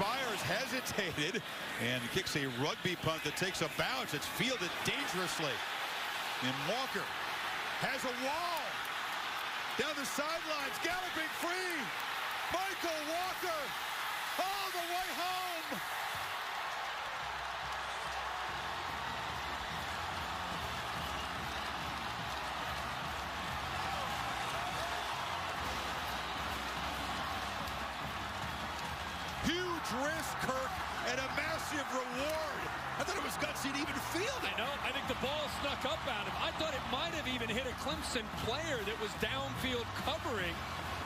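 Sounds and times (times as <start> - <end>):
crowd shouts and whoops: 0.0 - 41.0
stadium crowd roaring: 0.0 - 41.0.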